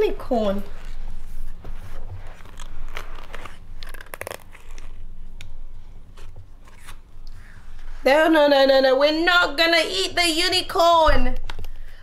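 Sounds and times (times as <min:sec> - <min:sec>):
paper card crackling: 0:02.2 - 0:05.0.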